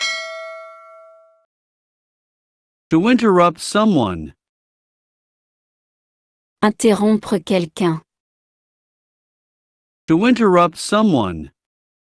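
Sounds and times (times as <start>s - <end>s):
notification bell chime: 0.0s - 1.4s.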